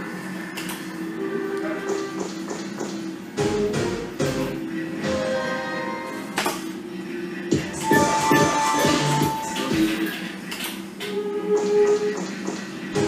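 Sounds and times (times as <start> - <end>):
slot machine game music: 3.3 - 6.4, 7.7 - 10.2.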